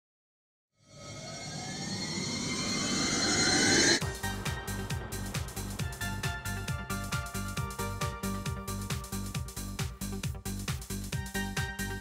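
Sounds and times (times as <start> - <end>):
synthesized rising whoosh sweep: 0.8 - 5.9.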